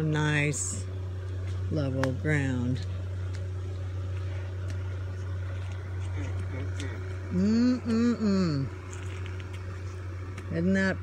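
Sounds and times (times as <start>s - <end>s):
low-pitched hum: 0.0s - 11.0s.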